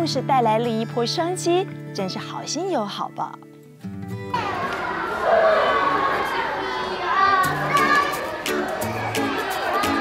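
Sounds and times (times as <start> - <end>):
background music: 0.0 - 10.0
children calling out and chattering: 4.3 - 10.0.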